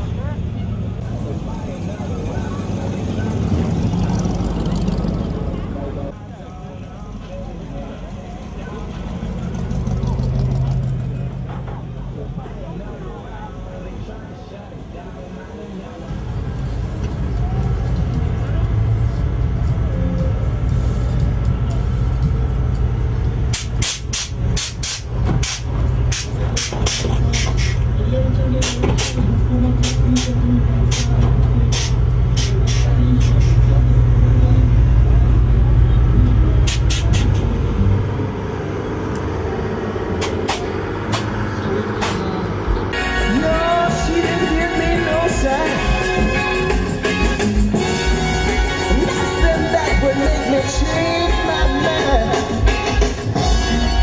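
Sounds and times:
vehicle engine rumbling: 0.0s - 54.0s
short sharp hisses: 23.6s - 27.8s.

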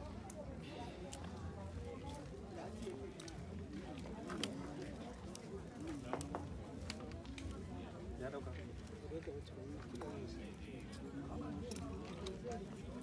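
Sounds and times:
background chatter: 0.0s - 13.0s.

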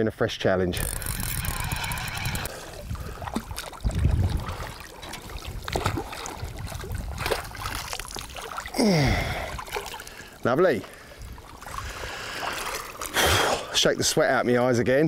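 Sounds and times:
fishing reel clicking: 0.8s - 2.5s
water sloshing: 0.8s - 14.0s.

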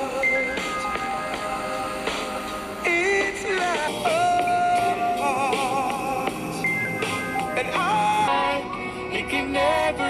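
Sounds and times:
song on radio: 0.0s - 10.0s.

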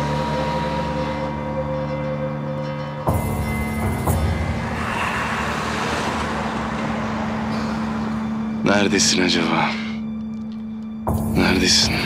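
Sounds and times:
road traffic: 0.0s - 11.3s.

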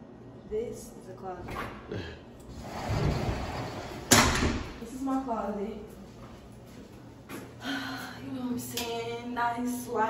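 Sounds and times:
closet door rustling open: 2.5s - 4.8s.

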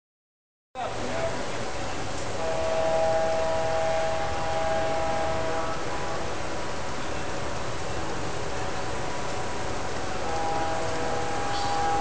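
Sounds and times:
steady noisy background: 0.8s - 12.0s
diesel horn chord: 2.4s - 6.3s, 10.1s - 12.0s.

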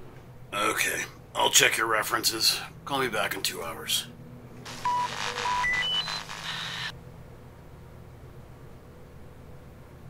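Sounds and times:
static hiss: 4.7s - 6.9s
beeps climbing in pitch: 4.8s - 6.9s.

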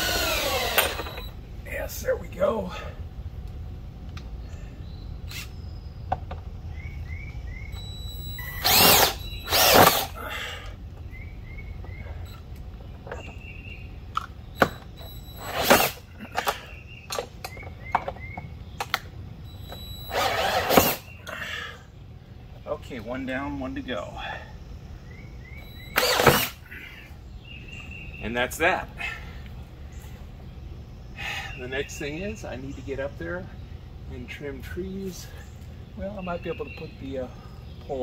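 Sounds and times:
cordless drill driving screws: 0.0s - 1.3s, 8.4s - 10.2s, 14.6s - 16.0s, 19.6s - 21.0s, 25.7s - 26.6s.

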